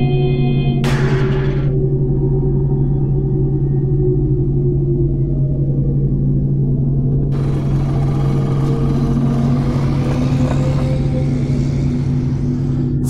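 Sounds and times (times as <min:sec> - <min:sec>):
low sustained drone: 0:00.0 - 0:13.0
cartoon car engine rumble: 0:07.3 - 0:13.0.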